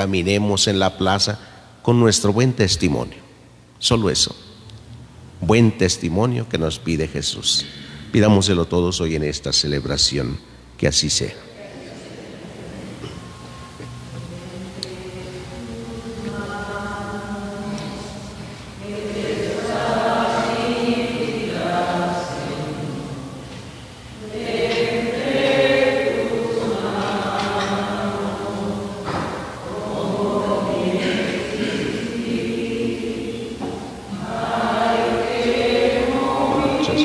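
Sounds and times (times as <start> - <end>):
voices singing a slow hymn: 0.0 - 37.0.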